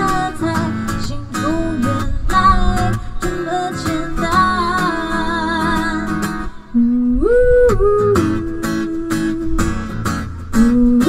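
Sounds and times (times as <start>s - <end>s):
strummed acoustic guitar: 0.0s - 11.0s
woman singing: 0.0s - 11.0s.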